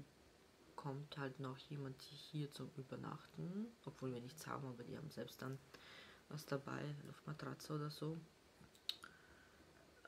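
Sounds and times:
person speaking: 0:00.7 - 0:09.0.

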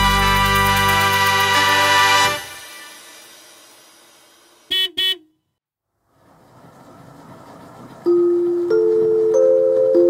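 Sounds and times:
vehicle horn toots: 0:04.7 - 0:05.5.

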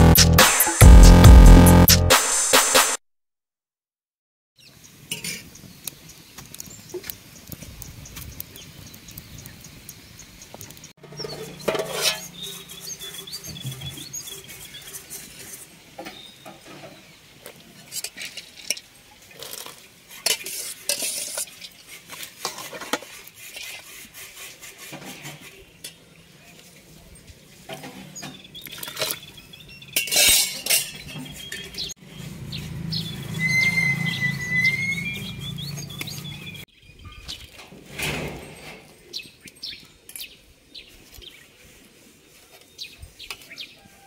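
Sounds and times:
bird chirping: 0:05.5 - 0:16.6, 0:28.1 - 0:37.5.

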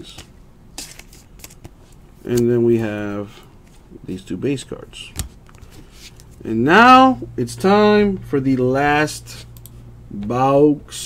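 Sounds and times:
cards rustling: 0:00.0 - 0:02.6.

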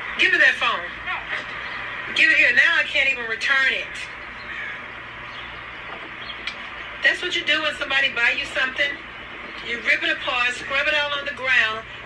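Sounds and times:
low outdoor background noise: 0:00.0 - 0:12.0.

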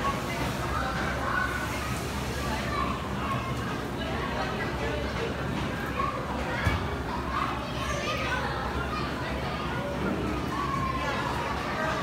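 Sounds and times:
children's voices chattering: 0:00.0 - 0:12.0.

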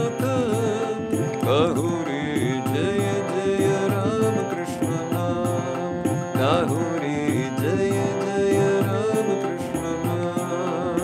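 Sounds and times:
harmonium chords: 0:00.0 - 0:11.0
man singing: 0:00.0 - 0:11.0.

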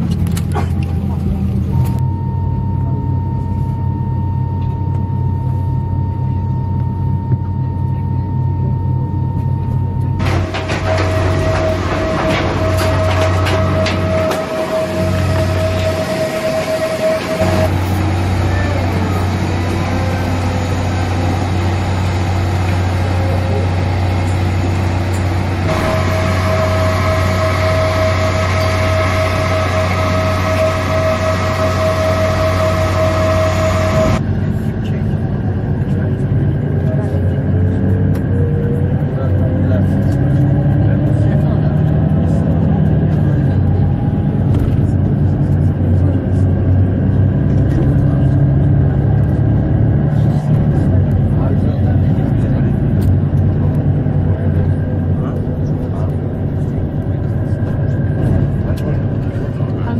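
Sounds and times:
aircraft cabin hum: 0:00.0 - 0:41.6, 0:43.1 - 0:59.9
airport apron rumble: 0:00.0 - 0:59.9
rising whine: 0:00.0 - 0:59.9
high steady tone: 0:01.8 - 0:34.5.

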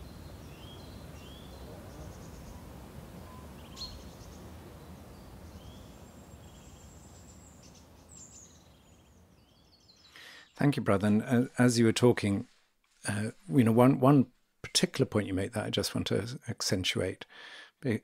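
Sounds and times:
faint birds chirping: 0:00.0 - 0:14.8.

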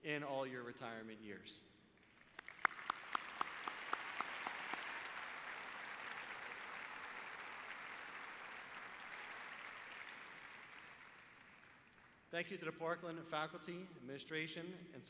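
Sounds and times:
audience applauding: 0:02.1 - 0:12.3
man's sharp hand claps: 0:02.4 - 0:12.1.

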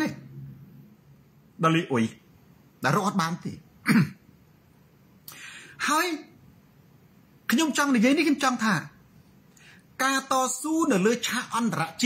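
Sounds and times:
man speaking: 0:00.0 - 0:00.3, 0:01.6 - 0:04.1, 0:05.8 - 0:06.4, 0:07.5 - 0:09.0, 0:10.0 - 0:12.0.

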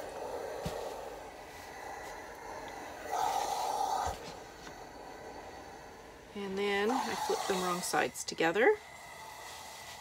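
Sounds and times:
iron sliding over fabric: 0:04.1 - 0:10.0.

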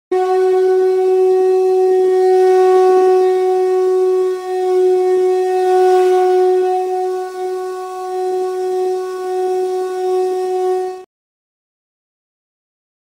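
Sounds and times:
long steady horn-like note: 0:00.1 - 0:11.1.

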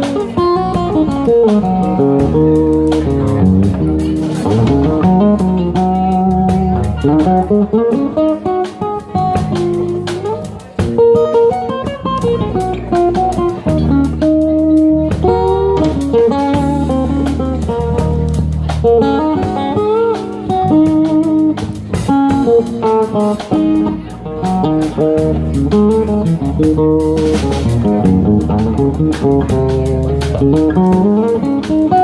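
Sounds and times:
bass guitar: 0:00.0 - 0:32.0
drums steady beat: 0:00.0 - 0:32.0
guitar picking a melody: 0:00.0 - 0:32.0.

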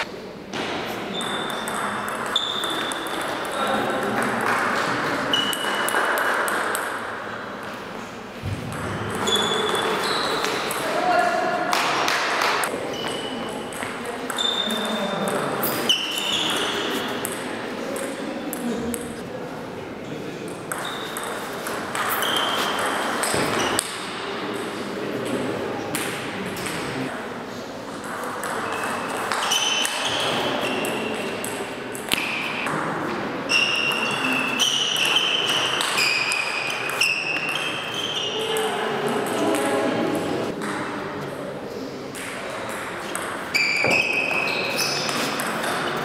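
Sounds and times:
indistinct voices in hall: 0:00.0 - 0:46.0.

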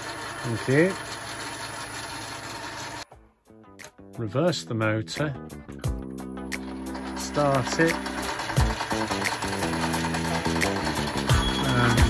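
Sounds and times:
metal lathe whirring: 0:00.0 - 0:03.0, 0:06.5 - 0:12.0
faint background music: 0:03.0 - 0:12.0.

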